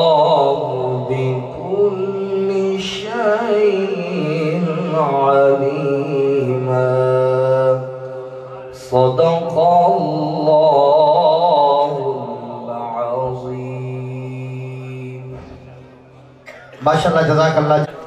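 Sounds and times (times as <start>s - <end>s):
man chanting unaccompanied: 0.0s - 18.0s.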